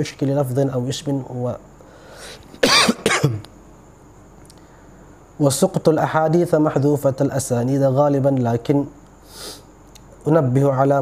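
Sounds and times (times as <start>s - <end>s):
man coughing: 2.6s - 3.5s.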